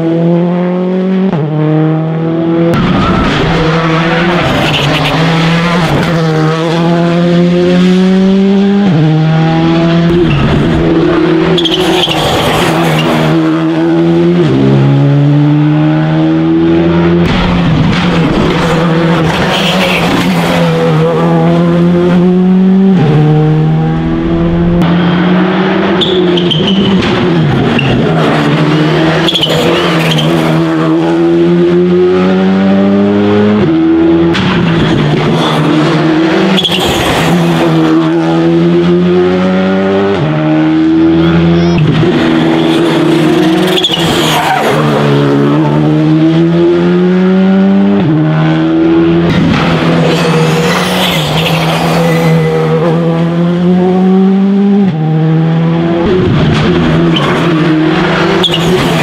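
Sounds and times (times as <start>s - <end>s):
rally cars passing at speed: 0.0s - 59.0s.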